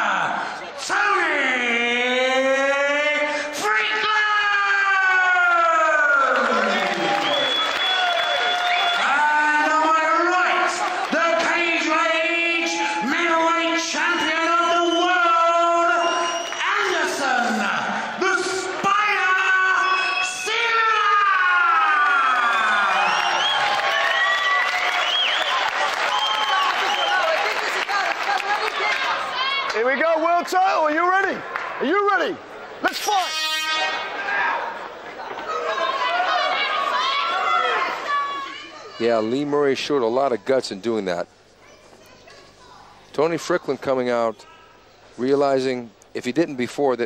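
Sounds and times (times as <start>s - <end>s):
crowd cheering: 3.7s - 39.5s.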